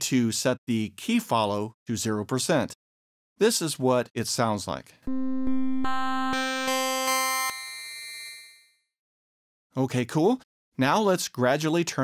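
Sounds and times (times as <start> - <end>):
buzzy synthesizer notes: 5.1 - 7.6.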